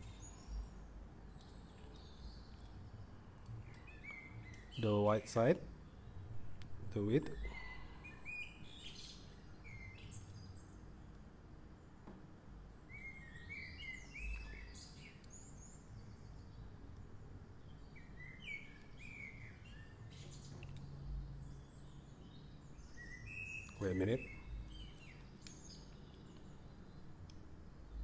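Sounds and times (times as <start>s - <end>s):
faint bird chirps: 0.0s - 10.9s, 12.8s - 28.0s
low background rumble: 5.5s - 23.7s.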